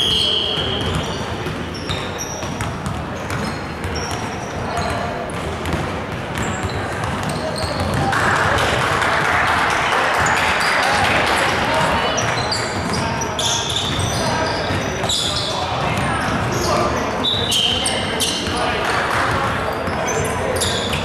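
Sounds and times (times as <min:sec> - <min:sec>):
referee's whistle blast: 0:00.0 - 0:01.3
sneakers squeaking on hardwood: 0:00.0 - 0:08.1, 0:11.5 - 0:21.0
players' voices: 0:00.0 - 0:21.0
basketball dribbling: 0:00.2 - 0:08.7.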